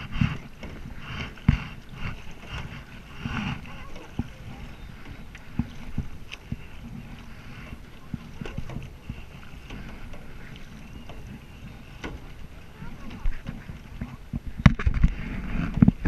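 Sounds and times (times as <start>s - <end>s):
paddle splashing in water: 0.0s - 16.0s
steady low rumble: 0.0s - 16.0s.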